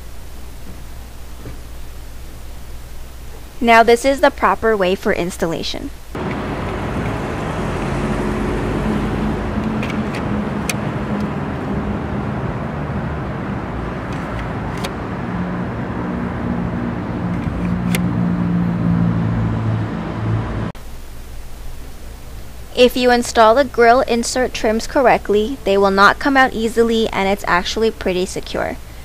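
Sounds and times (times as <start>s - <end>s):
car engine humming: 6.1s - 20.8s
traffic noise: 6.1s - 20.8s.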